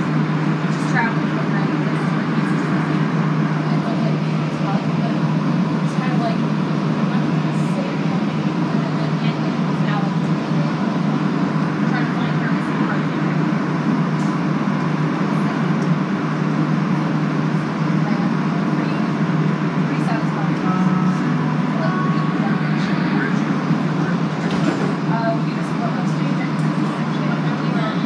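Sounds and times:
metro train car hum: 0:00.0 - 0:28.0
passengers' voices: 0:00.0 - 0:28.0.

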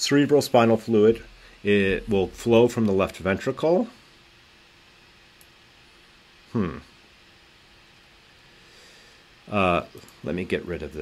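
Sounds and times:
faint hum: 0:00.0 - 0:11.0
steady low hiss: 0:00.0 - 0:11.0.

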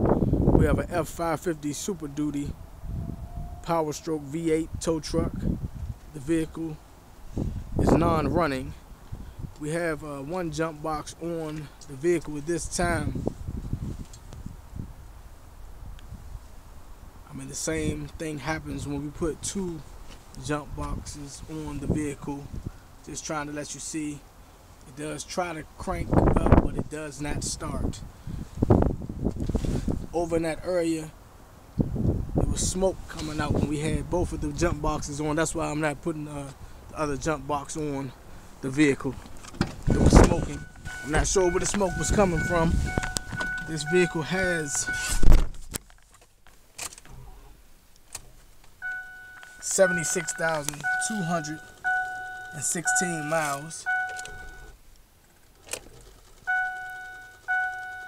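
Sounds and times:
wind buffeting microphone: 0:00.0 - 0:06.1, 0:07.2 - 0:10.0, 0:12.5 - 0:16.5, 0:25.8 - 0:30.2, 0:31.7 - 0:35.4, 0:39.6 - 0:45.7
dashboard warning chime: 0:39.9 - 0:45.2, 0:48.8 - 0:54.7, 0:56.5 - 0:58.0.

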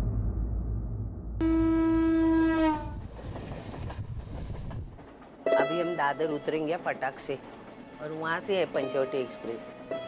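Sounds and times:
train horn: 0:01.4 - 0:03.0
train wheels clattering on track: 0:02.8 - 0:09.9.

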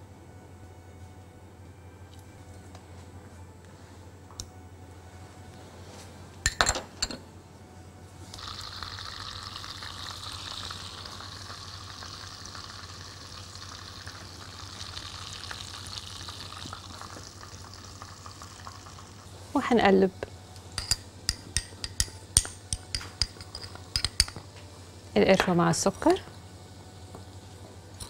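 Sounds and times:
food sizzling in a pan: 0:08.4 - 0:19.3.

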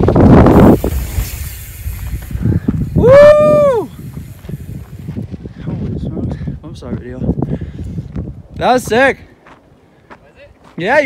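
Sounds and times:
wind on microphone: 0:00.0 - 0:09.3
mountain bike passing on dirt: 0:00.0 - 0:09.8.

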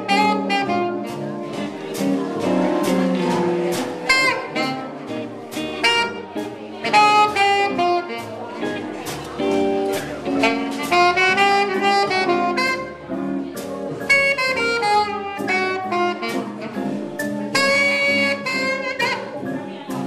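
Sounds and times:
saxophone jazz melody: 0:00.0 - 0:20.0.

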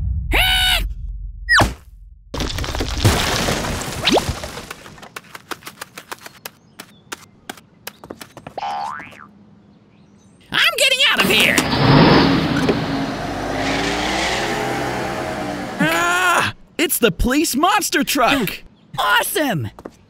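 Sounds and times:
vehicle engine running: 0:11.6 - 0:15.9.

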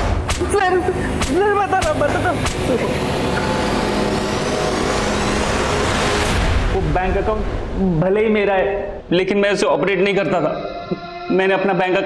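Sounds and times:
sustained drone: 0:00.0 - 0:09.1
whooshing riser swell: 0:02.4 - 0:09.1
man speaking: 0:06.8 - 0:12.0.

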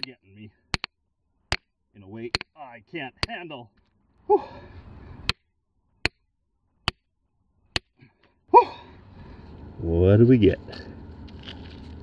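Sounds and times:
metal tool striking rock: 0:00.0 - 0:02.6.

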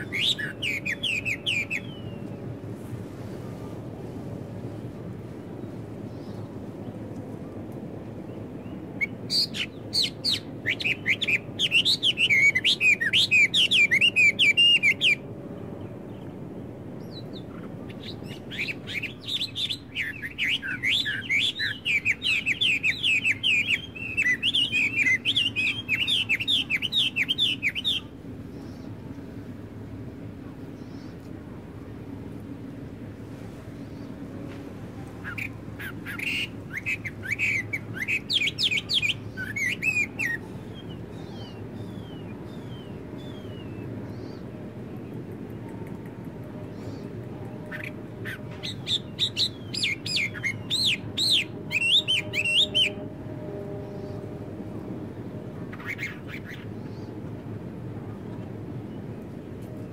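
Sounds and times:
songbird chirping: 0:00.0 - 0:02.7, 0:05.2 - 0:57.3.

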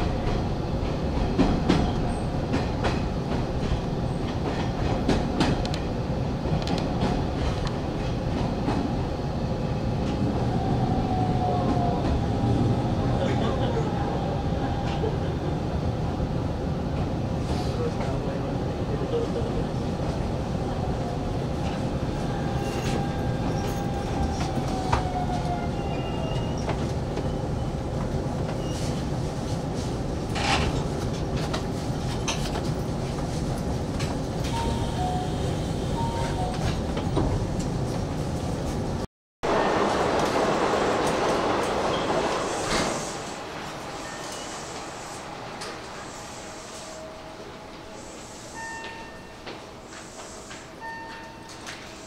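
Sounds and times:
train rumble: 0:00.0 - 0:52.0.

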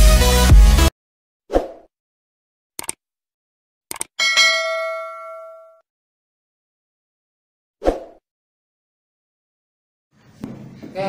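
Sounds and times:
mouse clicks: 0:03.9 - 0:04.1
notification bell ding: 0:04.2 - 0:05.8.

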